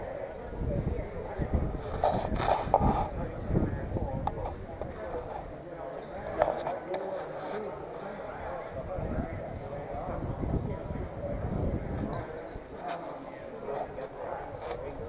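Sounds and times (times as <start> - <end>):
people talking indistinctly: 0.0 - 15.0.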